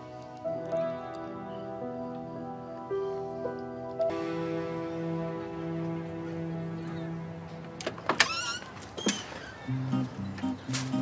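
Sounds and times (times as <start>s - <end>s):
door hinge creak: 7.8s - 9.8s.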